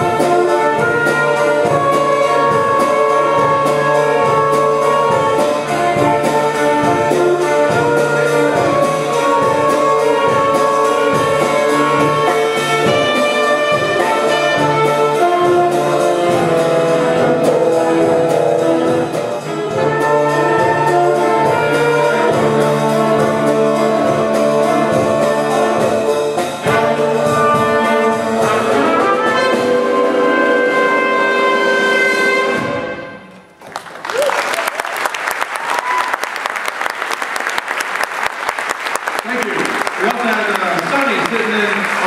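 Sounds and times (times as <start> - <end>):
trumpet: 0.0 - 33.5
audience applauding: 33.5 - 42.0.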